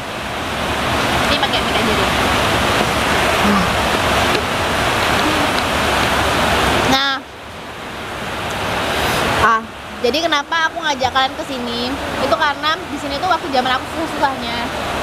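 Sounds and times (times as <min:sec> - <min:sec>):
heavy rain falling: 0:00.0 - 0:15.0.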